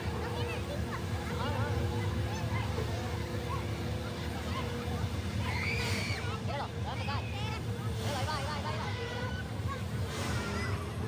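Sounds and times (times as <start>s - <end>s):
fairground ride rumble and hum: 0.0s - 11.0s.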